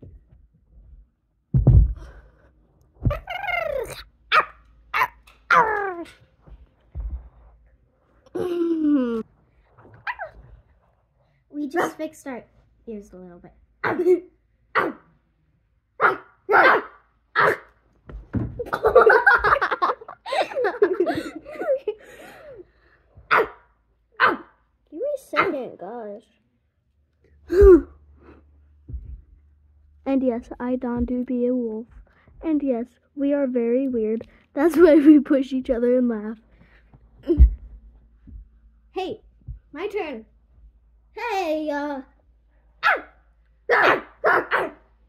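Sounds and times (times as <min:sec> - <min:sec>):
thump on carpet: 0:01.5 - 0:02.2, 0:06.5 - 0:07.5, 0:18.1 - 0:18.8, 0:28.9 - 0:29.3
girl imitating barks and yips: 0:03.0 - 0:06.1, 0:13.8 - 0:14.2, 0:25.4 - 0:25.6, 0:42.8 - 0:44.7.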